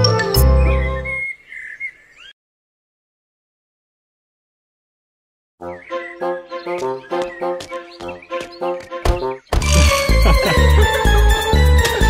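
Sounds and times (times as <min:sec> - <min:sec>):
high bird-like chirps: 0:00.0 - 0:02.4, 0:05.6 - 0:10.2.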